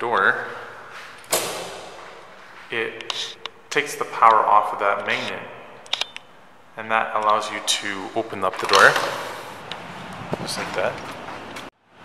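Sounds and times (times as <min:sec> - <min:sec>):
door lock clack: 0:01.2 - 0:02.0, 0:08.5 - 0:09.4.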